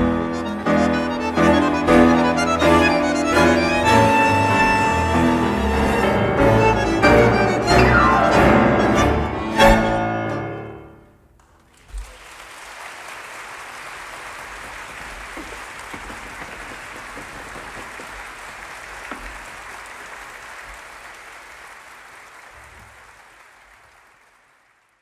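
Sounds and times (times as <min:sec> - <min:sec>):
audience applause: 0:11.4 - 0:25.0.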